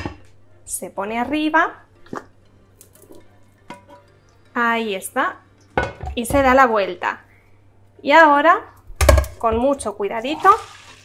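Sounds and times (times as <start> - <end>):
pan and plate knocking: 5.8 - 6.6.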